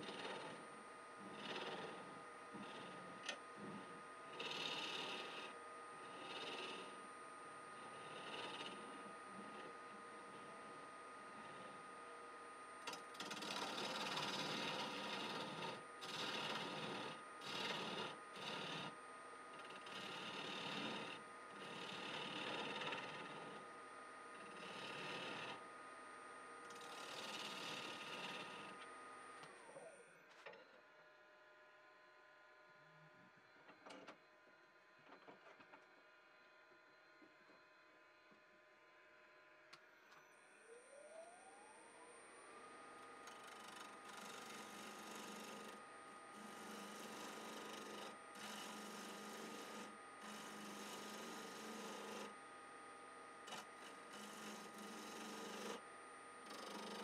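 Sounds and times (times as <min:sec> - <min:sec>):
gouge scraping spinning wood: 0:00.0 - 0:07.1, 0:07.8 - 0:11.9, 0:12.8 - 0:25.7, 0:26.7 - 0:29.2, 0:43.2 - 0:52.4, 0:53.0 - 0:57.0
wood lathe whine: 0:00.0 - 0:30.8, 0:40.1 - 0:57.0.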